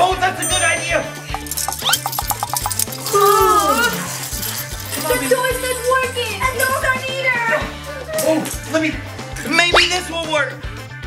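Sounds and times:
plastic baby rattle shaking: 1.3s - 6.8s.

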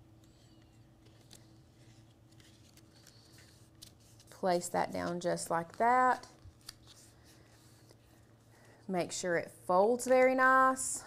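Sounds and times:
rustling of cardstock: 0.2s - 8.7s
woman speaking: 4.4s - 6.4s, 8.9s - 11.0s.

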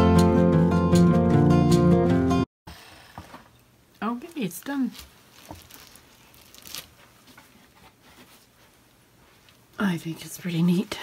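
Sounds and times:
faint rustling: 4.3s - 9.8s.

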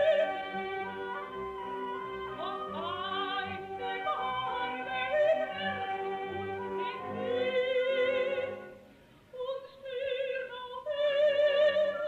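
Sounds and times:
orchestral accompaniment: 0.0s - 8.9s
operatic singing with vibrato: 0.0s - 12.0s.

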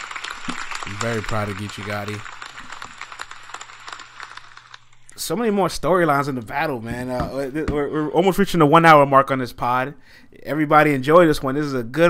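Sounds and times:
irregular clicking and crackling: 0.0s - 5.2s.

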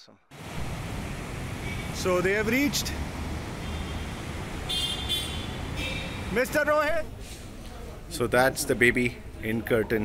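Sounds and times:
road traffic rumble: 0.3s - 9.7s
vehicle horn honking: 3.6s - 6.3s.

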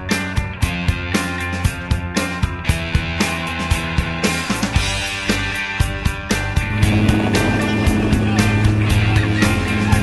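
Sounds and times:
rock music: 0.0s - 10.0s
plane engine hum: 6.7s - 10.0s.

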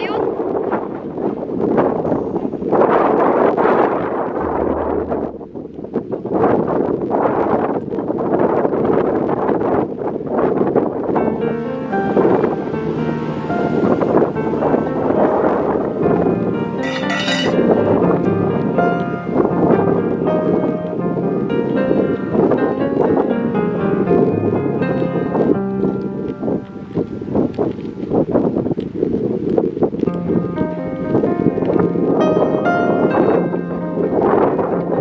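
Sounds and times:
wind buffeting microphone: 0.0s - 35.0s
background music: 11.2s - 27.8s.

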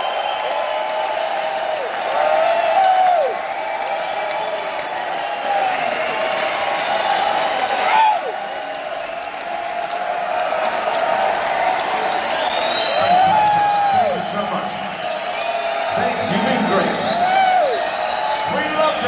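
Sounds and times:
crowd clapping and cheering: 0.0s - 19.0s
voices whooping: 0.0s - 19.0s.

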